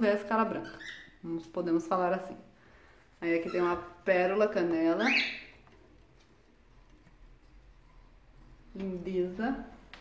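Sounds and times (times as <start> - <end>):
cockatiel chirp: 0.6 - 1.2, 5.0 - 5.5.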